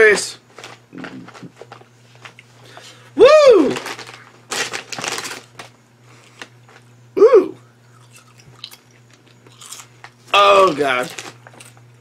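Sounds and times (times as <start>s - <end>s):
bag crinkles and clicks: 0.6s - 2.4s, 3.6s - 6.9s, 8.0s - 11.9s
man shouting woo: 3.2s - 3.8s, 7.2s - 7.6s.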